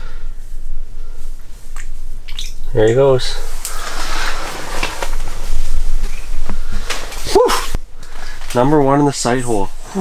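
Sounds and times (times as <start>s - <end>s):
rustling handling noise: 2.9s - 9.6s.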